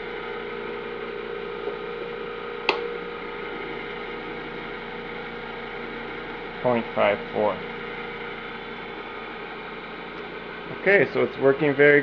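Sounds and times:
electrical hum: 0.0s - 12.0s
sharp click: 2.7s - 2.9s.

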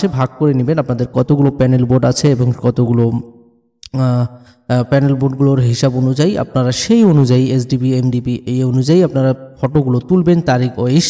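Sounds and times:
man speaking: 0.0s - 3.2s, 3.8s - 11.0s.

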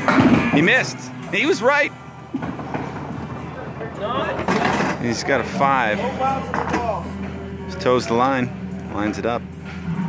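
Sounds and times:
bowling alley noise: 0.0s - 7.6s.

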